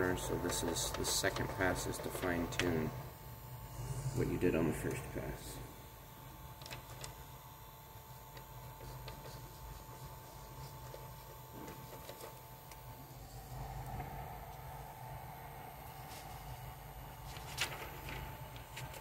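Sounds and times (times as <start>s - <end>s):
cooling fans humming and whining: 0.0s - 19.0s
paper rustling and clicking: 0.2s - 2.8s, 6.6s - 7.2s, 8.3s - 12.8s, 17.2s - 19.0s.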